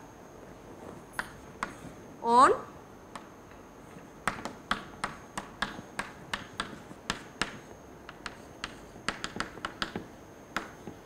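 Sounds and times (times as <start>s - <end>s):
chalk tapping on a chalkboard: 1.2s - 1.8s, 4.2s - 11.0s.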